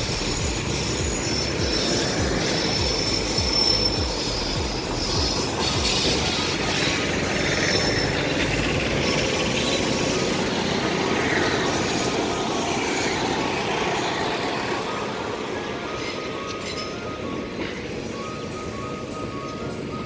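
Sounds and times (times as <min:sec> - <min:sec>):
high wheel squeal: 0:00.0 - 0:20.0
train wheels rumbling on rails: 0:00.0 - 0:20.0.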